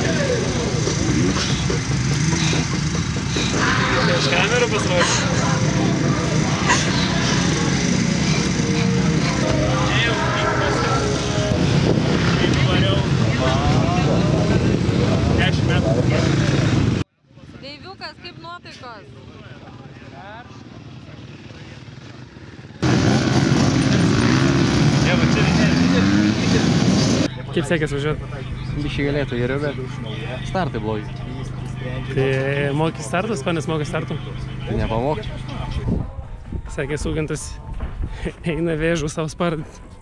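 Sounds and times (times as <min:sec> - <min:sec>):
background voices: 0:00.0 - 0:17.0
motocross bike engines: 0:00.0 - 0:36.8.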